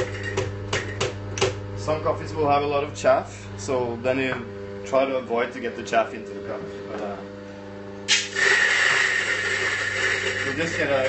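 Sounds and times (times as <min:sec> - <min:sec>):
coffee grinder whining: 0:00.0 - 0:01.0, 0:08.0 - 0:11.0.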